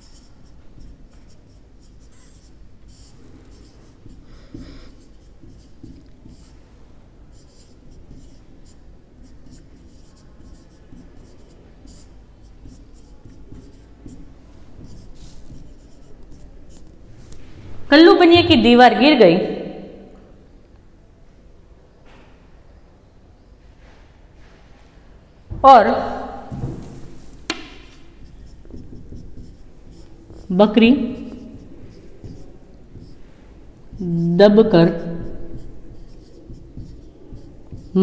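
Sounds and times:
marker writing on whiteboard: 0:00.0 - 0:17.4, 0:26.5 - 0:38.0.

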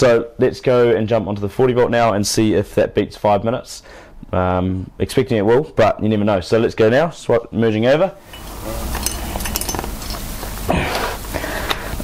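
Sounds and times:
rustling handling noise: 0:08.2 - 0:10.7
person coughing: 0:10.7 - 0:11.2.

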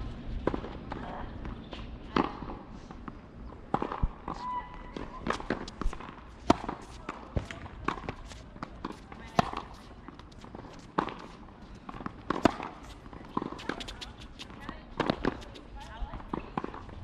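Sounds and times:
tennis balls struck by rackets: 0:00.4 - 0:17.0
tennis balls bouncing on hard court: 0:03.6 - 0:17.0.

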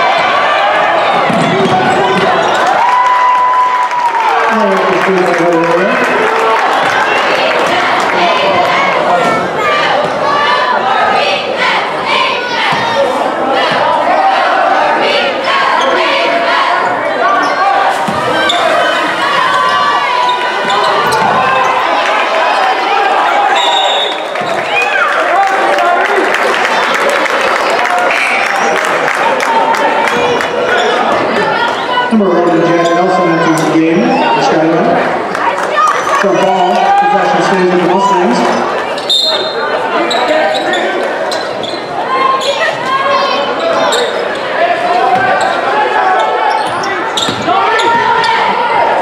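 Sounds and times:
voices and shouts in gym: 0:00.0 - 0:49.0.

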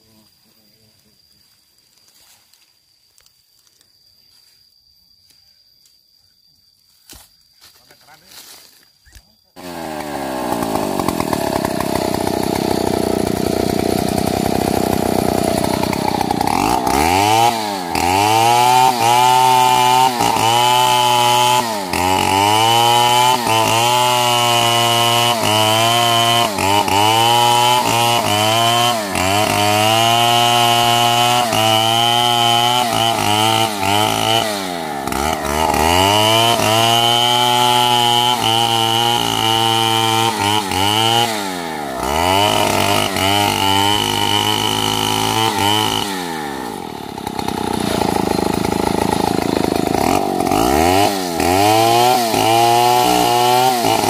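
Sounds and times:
chainsaw cutting tree trunk: 0:09.6 - 0:54.0.

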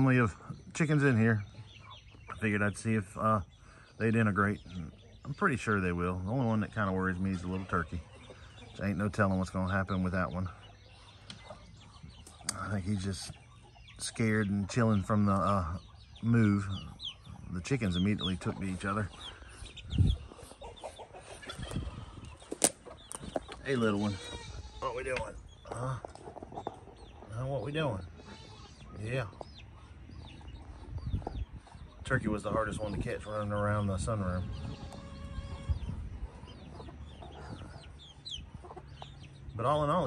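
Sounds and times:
chicks peeping and clucking: 0:00.0 - 0:40.0.

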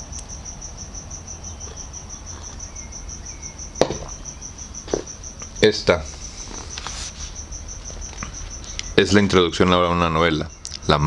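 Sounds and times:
cricket chirping: 0:00.0 - 0:11.0
sharp knock: 0:03.8 - 0:04.2.

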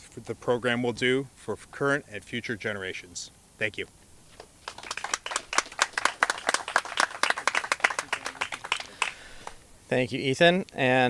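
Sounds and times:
small group applauding: 0:04.6 - 0:09.6.

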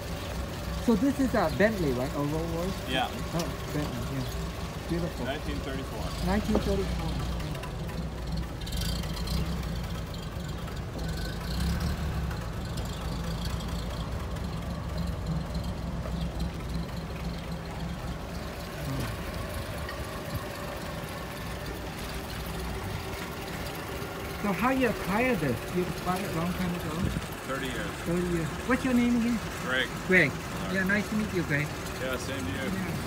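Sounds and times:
car engine idling: 0:00.0 - 0:33.0.

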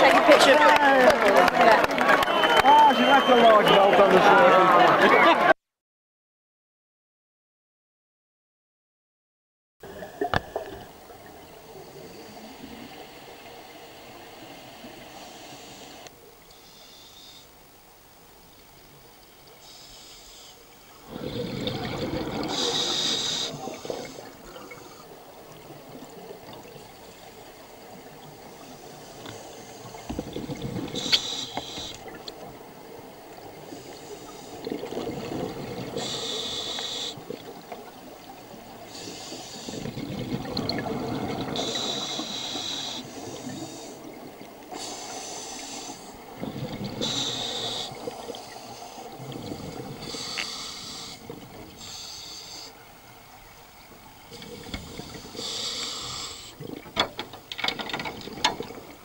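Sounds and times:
regulator inhalation hiss: 0:11.7 - 0:17.6, 0:19.6 - 0:21.6, 0:22.5 - 0:25.1, 0:28.4 - 0:30.1, 0:30.9 - 0:32.1, 0:33.7 - 0:34.7, 0:35.9 - 0:37.3, 0:38.8 - 0:39.9, 0:41.5 - 0:46.3, 0:46.9 - 0:53.0, 0:54.3 - 0:56.6
exhaled air bubbling: 0:20.6 - 0:59.0.

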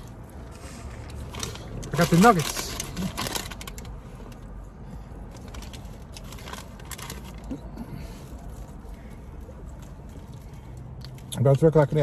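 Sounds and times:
paper bag rustling and crackling: 0:00.0 - 0:03.9, 0:05.4 - 0:07.6
low steady rumble: 0:00.0 - 0:12.0
soft chewing: 0:03.8 - 0:11.4.

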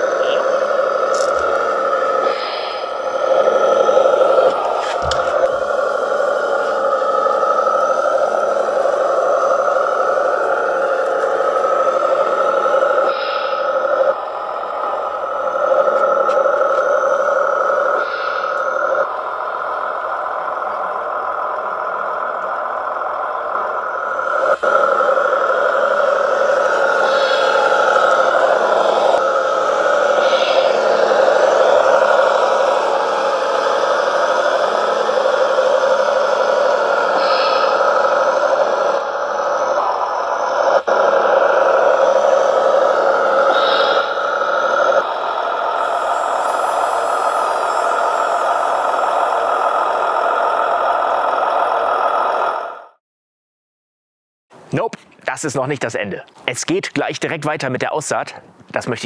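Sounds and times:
model tractor motors droning: 0:00.0 - 0:53.0.

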